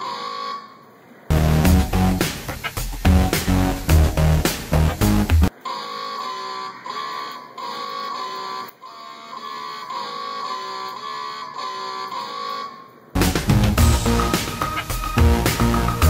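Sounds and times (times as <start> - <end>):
loud background music: 1.3 - 5.5, 13.2 - 16.0
robot guitar riff: 1.3 - 5.5, 13.2 - 16.0.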